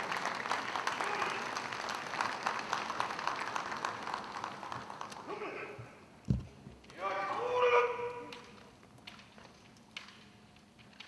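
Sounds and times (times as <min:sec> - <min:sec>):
audience applauding: 0:00.0 - 0:05.3.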